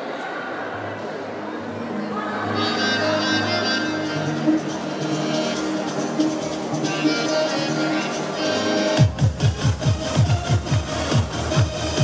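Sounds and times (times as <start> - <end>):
electronic dance music kick drum: 9.0 - 12.0.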